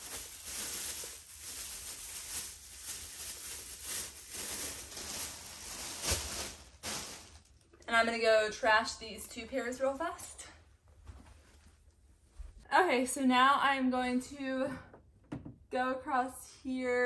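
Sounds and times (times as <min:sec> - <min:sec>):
plastic bag crinkling: 0:00.0 - 0:07.8.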